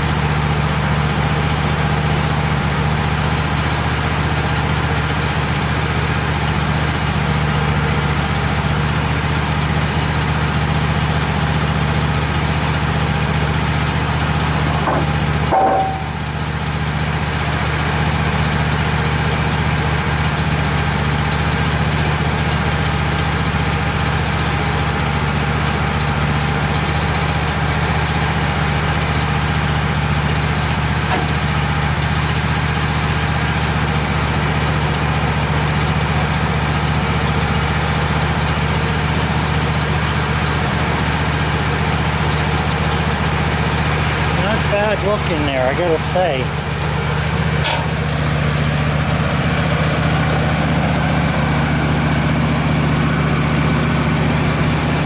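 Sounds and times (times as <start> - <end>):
sawmill engine idling: 0.0 - 55.0
brief knock: 14.8 - 16.1.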